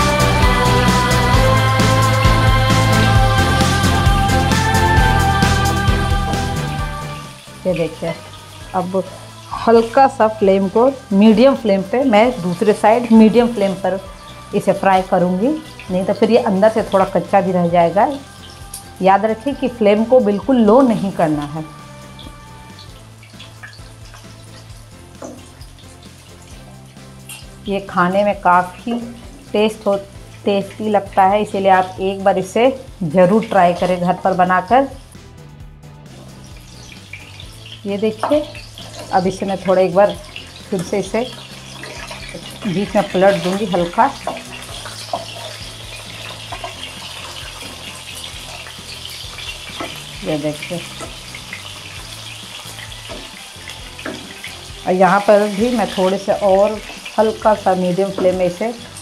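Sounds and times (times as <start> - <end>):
fish frying in oil: 0.0 - 35.3, 36.0 - 59.0
soft background music: 0.0 - 59.0
wooden spatula tapping and scraping: 25.2 - 25.9, 38.1 - 39.2, 44.2 - 50.2, 50.9 - 54.6, 58.0 - 58.5.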